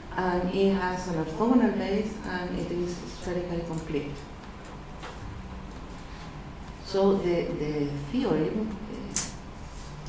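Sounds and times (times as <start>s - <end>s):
steady room noise: 0.0s - 10.0s.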